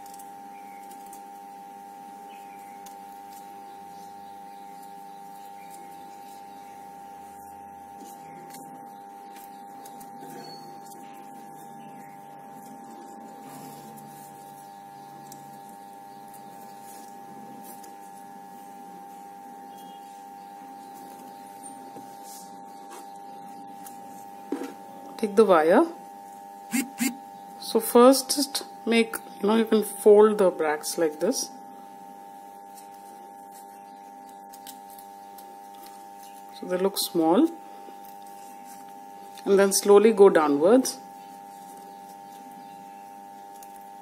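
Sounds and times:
high-pitched hum: 26.6 - 27.8.

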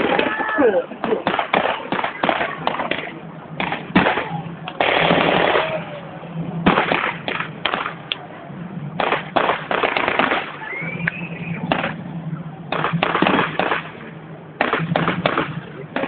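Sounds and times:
rushing blast: 0.0 - 16.0
blank gunfire shots and bursts: 1.0 - 5.9, 6.6 - 8.2, 9.0 - 10.7, 11.6 - 12.0, 12.7 - 16.0.

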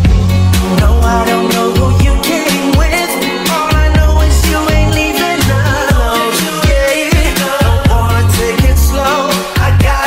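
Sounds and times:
sped-up pop song: 0.0 - 10.0.

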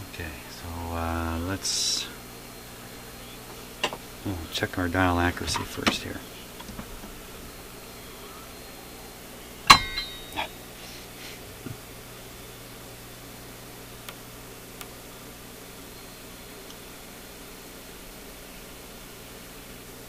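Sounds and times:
equipment hum and hiss: 0.0 - 20.0
sharp metallic clang: 9.7 - 10.5.

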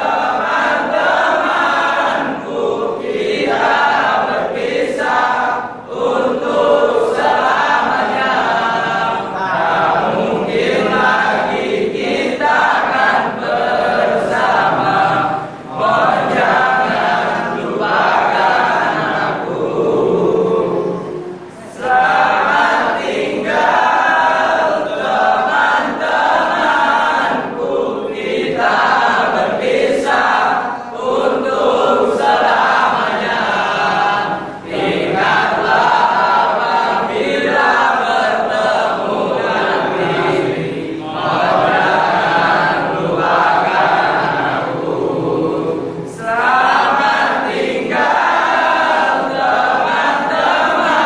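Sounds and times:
male choir singing: 0.0 - 51.0.

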